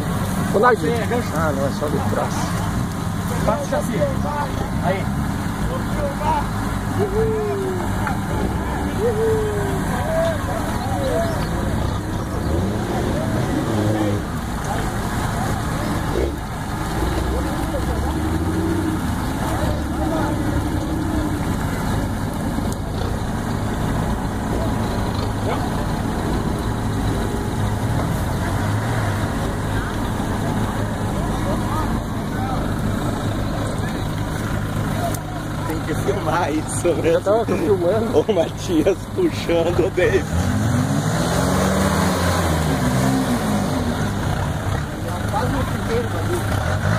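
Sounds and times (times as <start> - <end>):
engine running steadily: 0.0 - 41.5, 42.2 - 46.9
people calling out: 6.1 - 23.2.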